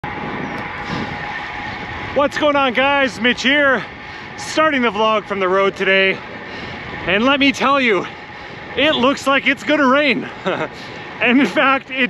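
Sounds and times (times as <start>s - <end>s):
bike tyres on pavement: 0.0s - 12.0s
wind rush: 0.0s - 12.0s.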